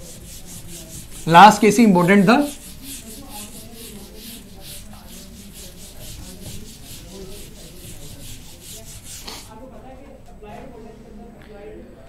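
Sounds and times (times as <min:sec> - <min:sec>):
duster scrubbing a whiteboard: 0:00.0 - 0:09.6.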